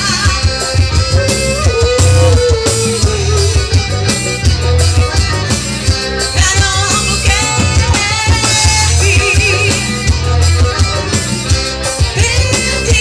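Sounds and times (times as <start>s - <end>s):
accordion: 0.0s - 13.0s
drum kit: 0.0s - 13.0s
electric bass: 0.0s - 13.0s
electric guitar: 0.0s - 13.0s.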